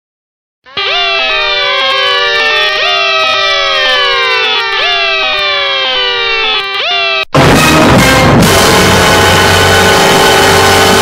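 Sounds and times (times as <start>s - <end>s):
layered siren-like electronic tones: 0.7s - 7.5s.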